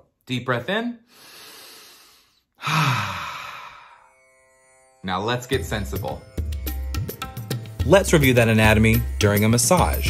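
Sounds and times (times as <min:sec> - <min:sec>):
man inhaling: 0:01.0 - 0:04.2
man sighing: 0:01.6 - 0:04.1.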